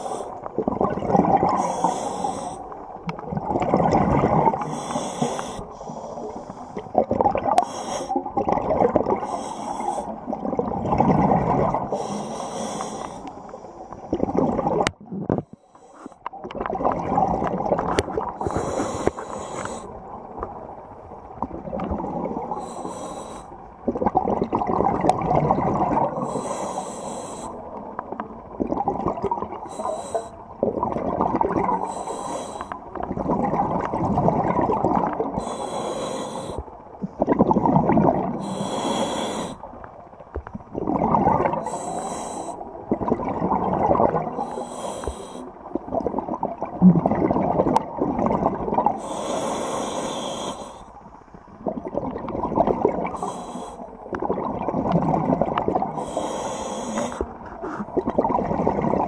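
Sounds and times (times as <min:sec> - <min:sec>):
exhaled bubbles rushing: 0:00.5 - 0:01.6, 0:02.9 - 0:04.7, 0:06.8 - 0:09.3, 0:10.1 - 0:12.0, 0:14.1 - 0:15.4, 0:16.4 - 0:18.6, 0:20.0 - 0:22.6, 0:23.8 - 0:26.2, 0:28.1 - 0:29.7, 0:30.5 - 0:31.9, 0:32.9 - 0:35.4, 0:37.0 - 0:38.4, 0:39.8 - 0:41.8, 0:42.7 - 0:44.5, 0:45.6 - 0:49.0, 0:51.5 - 0:53.3, 0:54.0 - 0:56.0, 0:57.2 - 0:59.0
regulator inhalation hiss: 0:01.6 - 0:02.6, 0:04.7 - 0:06.6, 0:07.6 - 0:08.1, 0:09.3 - 0:10.1, 0:11.9 - 0:13.3, 0:18.5 - 0:19.9, 0:22.6 - 0:23.5, 0:26.2 - 0:27.6, 0:31.9 - 0:32.8, 0:35.4 - 0:36.7, 0:38.4 - 0:39.6, 0:41.6 - 0:42.6, 0:44.4 - 0:45.5, 0:49.0 - 0:51.0, 0:53.2 - 0:53.8, 0:56.0 - 0:57.2.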